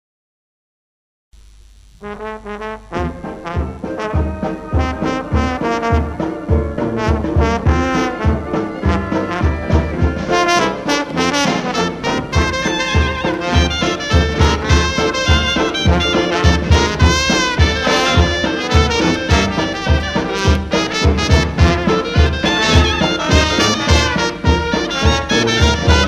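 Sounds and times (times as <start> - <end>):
trumpet: 1.9 - 26.0
dixieland jazz band: 2.0 - 26.0
trombone: 2.0 - 26.0.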